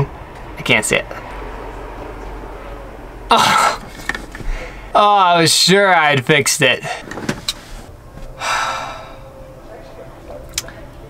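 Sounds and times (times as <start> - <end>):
low hum: 0.0 - 5.0.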